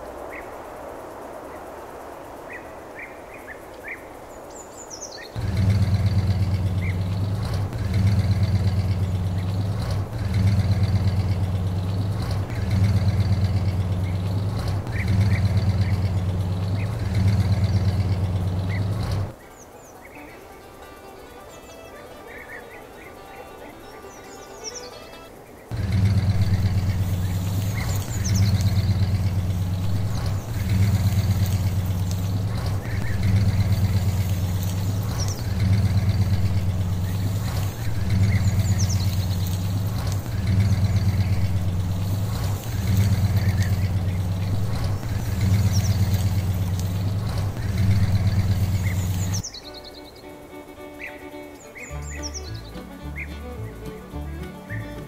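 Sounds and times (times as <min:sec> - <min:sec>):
birds chirping: 0:00.0 - 0:55.0
tractor engine pulsing: 0:05.4 - 0:55.0.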